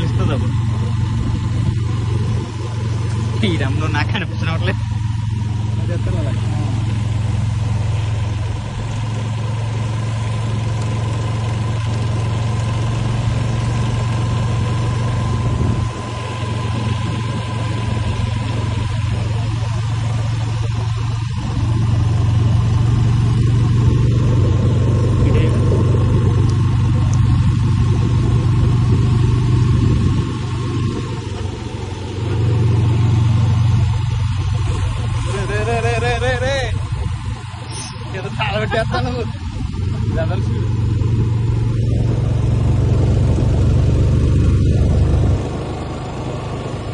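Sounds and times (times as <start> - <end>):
faint steady whine: 0.0 - 46.9
vehicle engine and road noise: 0.0 - 46.9.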